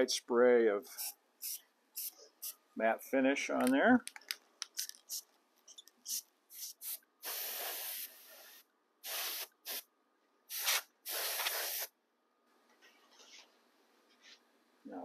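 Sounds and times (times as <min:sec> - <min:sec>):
aerosol can spraying: 0:01.0 - 0:02.6, 0:06.0 - 0:09.8, 0:10.5 - 0:11.9.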